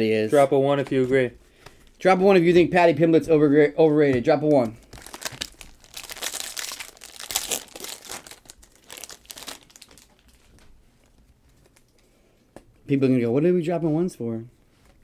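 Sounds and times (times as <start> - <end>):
foil pack crinkling as torn open: 4.8 - 10.6.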